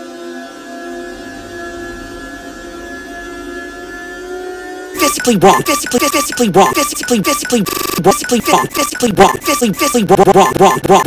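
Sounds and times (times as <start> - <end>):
electronic drone of held tones: 0.0 - 11.0.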